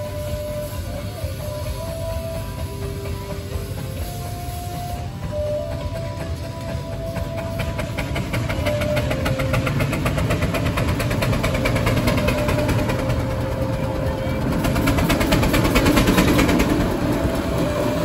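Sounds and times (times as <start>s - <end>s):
steam traction engine running: 0.0s - 18.0s.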